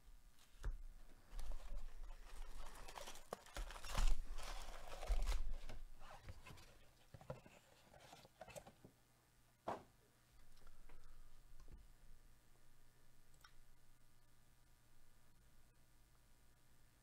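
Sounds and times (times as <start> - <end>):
foil wrappers crinkling: 1.3 - 6.8.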